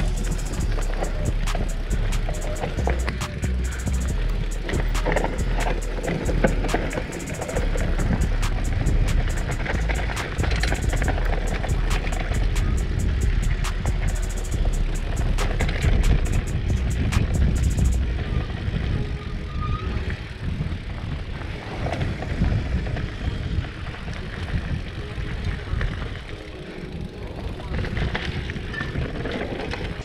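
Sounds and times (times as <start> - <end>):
regular ticks: 0.0 - 18.1
bike tyres rumbling on dirt: 0.0 - 30.0
wind on microphone: 0.0 - 30.0.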